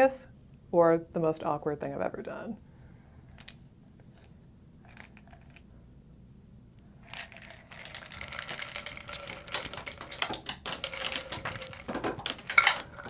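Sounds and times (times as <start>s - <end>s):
capsules rattling in plastic bottle: 4.9s - 5.6s, 7.0s - 13.0s.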